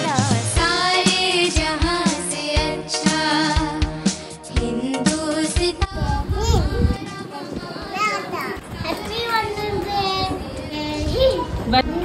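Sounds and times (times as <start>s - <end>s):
young child singing: 4.7s - 12.0s.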